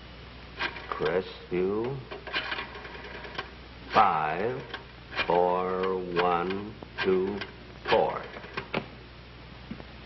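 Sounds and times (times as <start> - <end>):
rotary telephone dial clicking: 0.6 - 8.8.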